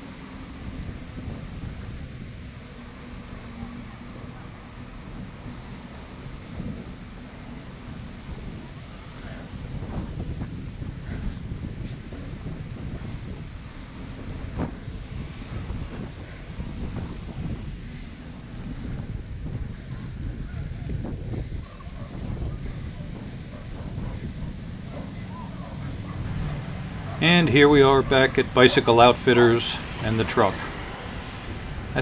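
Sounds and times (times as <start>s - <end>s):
wind buffeting microphone: 7.9s - 32.0s.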